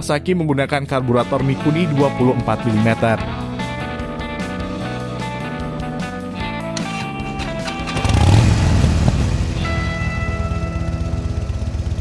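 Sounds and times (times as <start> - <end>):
motorcycle engine revving and idling: 6.9 - 12.0.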